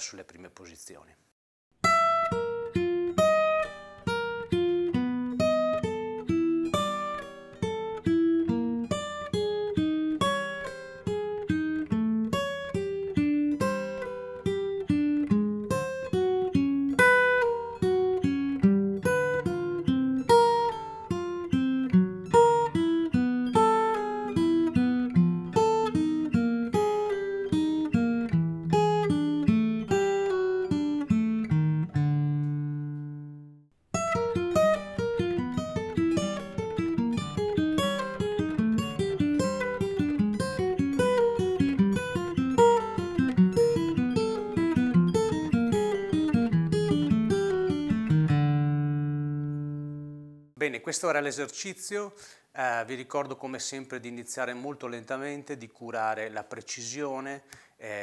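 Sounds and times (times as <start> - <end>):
acoustic guitar single plucked notes: 1.8 - 50.5.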